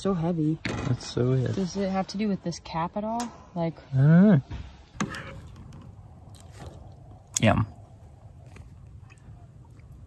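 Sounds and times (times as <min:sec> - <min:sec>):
quiet chewing: 0:05.1 - 0:07.5, 0:08.2 - 0:10.0.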